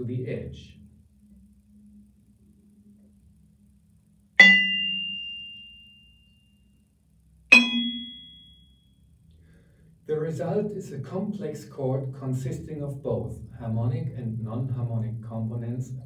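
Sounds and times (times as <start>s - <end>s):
vibraphone bar struck ringing: 4.4s - 6.1s, 7.5s - 8.7s.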